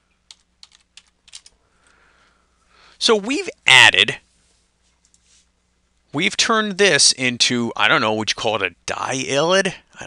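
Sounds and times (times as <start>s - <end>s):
faint keyboard keystrokes: 0.3s - 1.6s.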